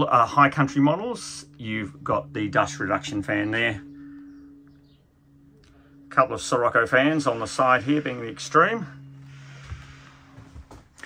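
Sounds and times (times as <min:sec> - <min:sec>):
faint low hum: 0:00.0 - 0:11.0
soft low bumps: 0:00.3 - 0:11.0.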